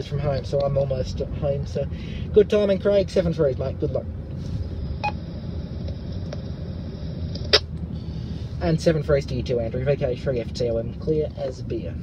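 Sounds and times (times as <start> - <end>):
road rumble inside moving car: 0.0 - 12.0.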